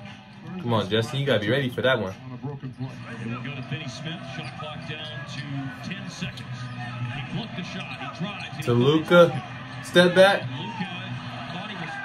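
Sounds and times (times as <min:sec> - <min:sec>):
arena crowd hum: 0:00.0 - 0:12.0
man talking: 0:00.5 - 0:02.2, 0:07.6 - 0:10.9.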